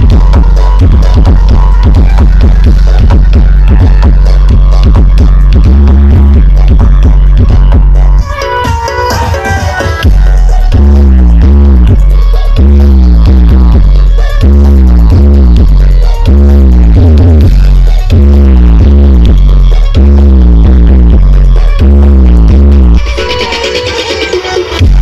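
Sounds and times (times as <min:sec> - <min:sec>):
bass-heavy music over loudspeakers: 0:00.0 - 0:25.0.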